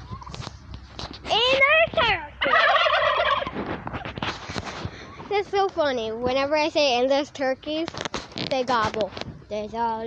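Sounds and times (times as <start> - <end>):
turkey gobbling: 2.0 - 4.2.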